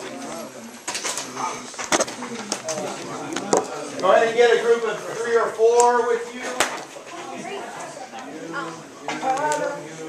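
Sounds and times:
students chattering: 0.0 - 10.0.

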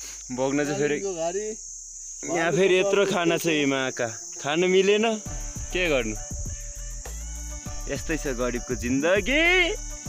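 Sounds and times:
high-pitched insect drone: 0.0 - 10.0
man talking: 7.8 - 9.8.

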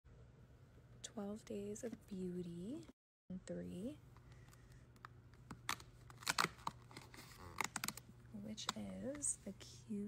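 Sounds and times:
cardboard snapping and tearing: 5.5 - 8.0.

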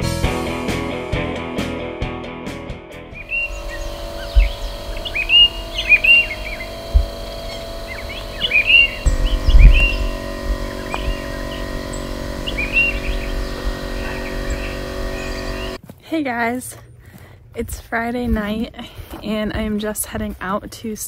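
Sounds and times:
low thumps: 3.2 - 15.8
songbirds chirping: 3.2 - 15.8.

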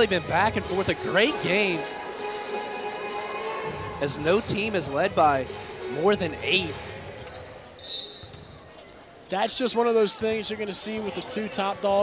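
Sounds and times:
gym background noise: 3.6 - 12.0.

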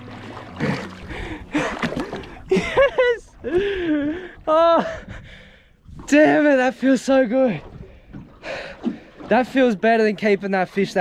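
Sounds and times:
man gasping and laughing: 0.6 - 5.7.

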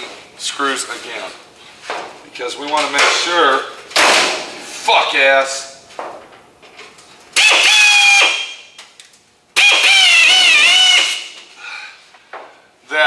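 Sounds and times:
air drill whining: 7.4 - 8.7, 9.6 - 11.4.

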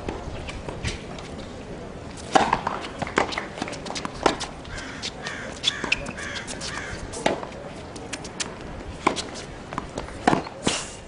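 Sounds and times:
tennis ball hits: 2.2 - 10.7.

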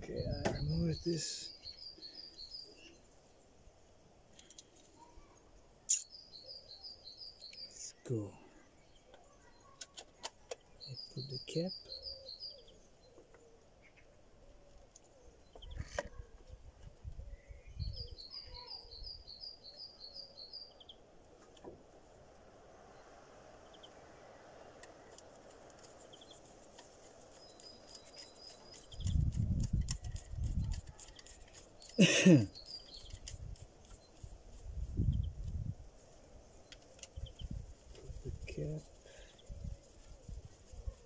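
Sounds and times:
songbird trilling: 10.8 - 13.2, 17.4 - 21.0.

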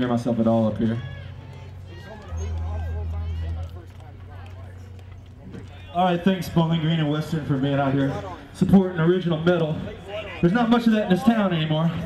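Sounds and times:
low steady hum: 1.0 - 6.4.

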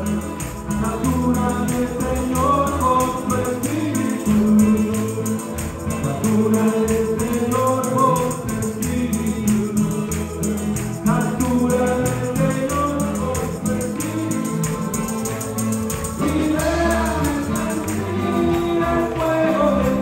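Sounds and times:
voices singing along: 0.0 - 20.0
worship band playing: 0.0 - 20.0.

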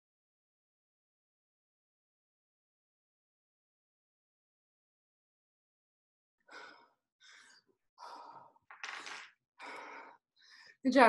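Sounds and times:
person panting heavily: 9.6 - 10.7.

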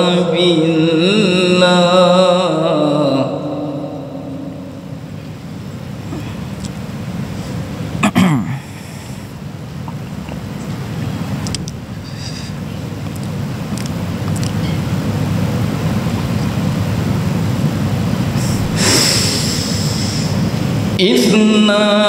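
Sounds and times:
low rumbling background noise: 0.0 - 22.0
short hiss: 18.4 - 20.6.

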